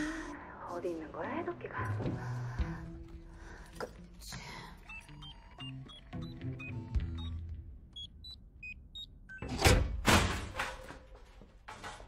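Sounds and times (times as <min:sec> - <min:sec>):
tense background music: 0:00.0 - 0:08.8
short electronic beeps: 0:04.8 - 0:07.4.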